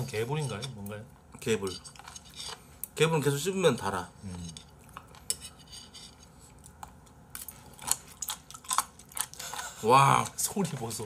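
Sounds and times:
crunchy chewing: 4.6s - 11.0s.

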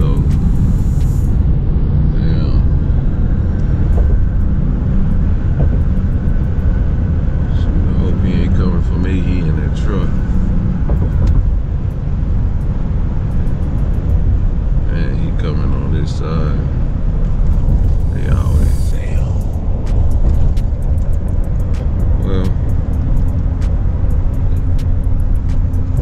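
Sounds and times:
road and engine rumble: 0.0s - 26.0s.

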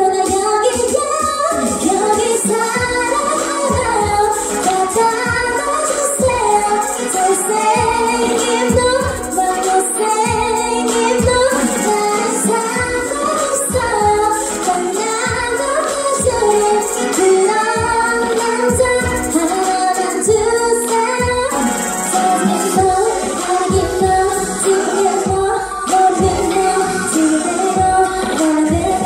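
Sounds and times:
backing track with steady beat: 0.0s - 29.0s
woman singing into microphone: 0.0s - 29.0s.

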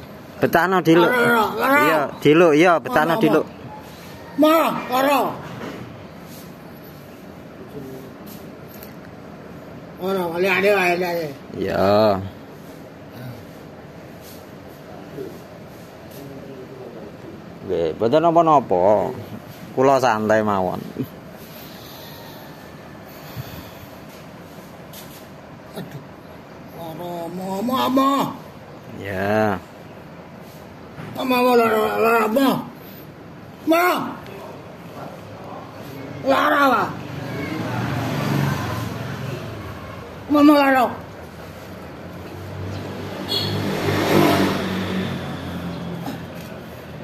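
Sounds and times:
steady background hiss: 0.0s - 38.0s, 38.8s - 44.0s
road noise: 0.0s - 47.0s
vehicle engine passing by: 35.9s - 40.4s, 41.4s - 47.0s.

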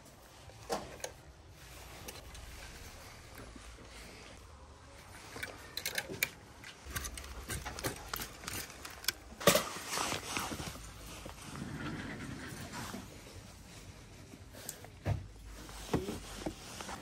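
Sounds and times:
plastic hangers scraping along rail: 5.3s - 13.2s.

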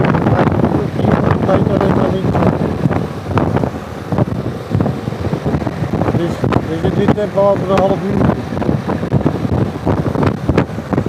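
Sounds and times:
scooter engine and road rumble: 0.0s - 11.0s
wind buffeting microphone: 0.0s - 11.0s.

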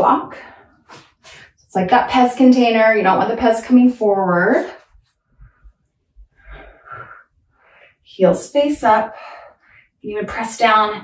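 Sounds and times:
woman breathing: 6.4s - 8.1s, 9.1s - 10.0s.

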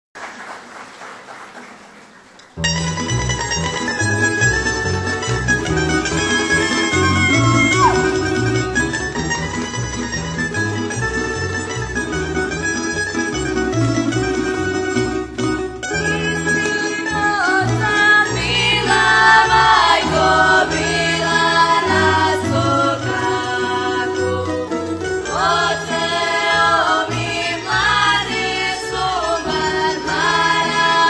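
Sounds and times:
plucked double bass: 2.6s - 31.0s
tremolo-plucked string instruments: 2.6s - 31.0s.

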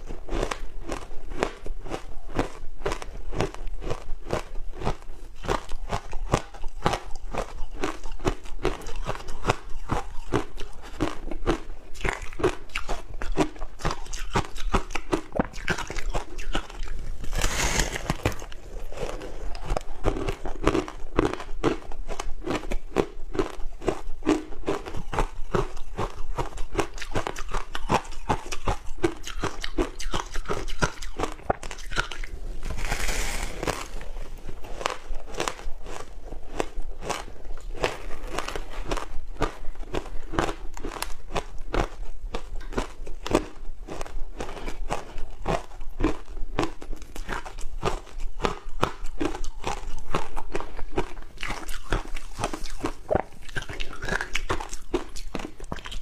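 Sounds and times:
ice crunching when chewed: 0.0s - 56.0s.

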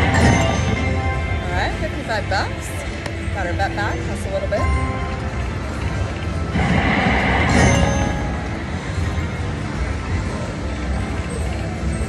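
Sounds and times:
slot machine game music: 0.0s - 10.5s
low casino hum: 0.0s - 12.0s
noisy rush of effect sound: 6.5s - 9.3s.

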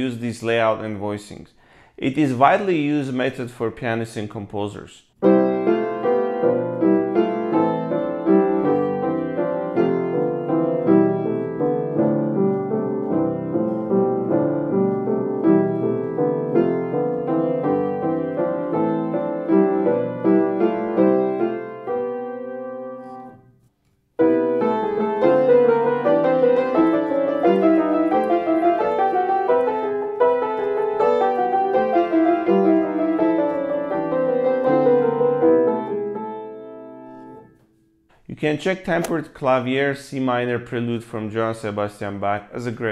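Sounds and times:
piano chord progression: 5.2s - 23.6s, 24.2s - 37.6s.

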